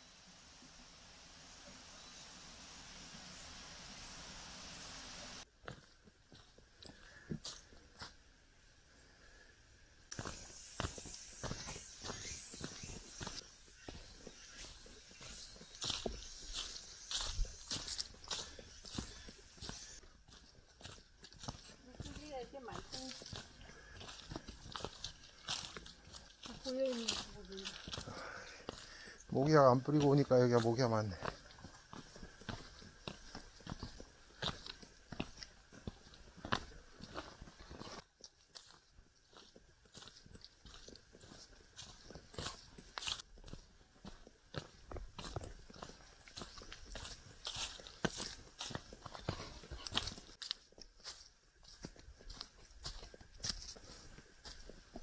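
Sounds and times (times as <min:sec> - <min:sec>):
flowing stream water: 0:00.0 - 0:05.4
footsteps crunching on leaves: 0:05.6 - 0:08.2, 0:10.1 - 0:55.0.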